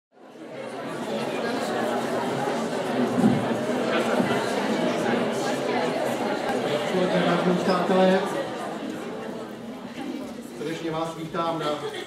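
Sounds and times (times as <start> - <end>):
audience chatter in large hall: 0.1 - 12.0.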